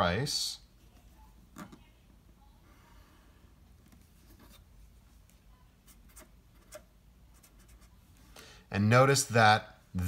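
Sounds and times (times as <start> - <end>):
marker scratching on paper: 5.8 - 8.1.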